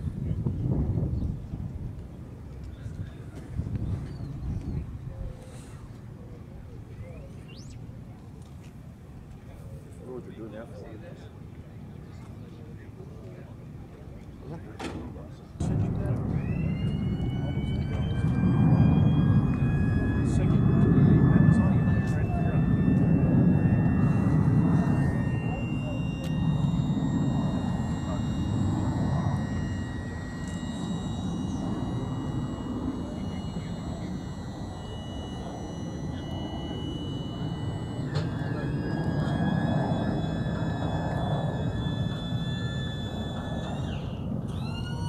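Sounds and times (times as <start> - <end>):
engine starter whine: 14.8 - 45.0
loud low rumble: 15.6 - 44.6.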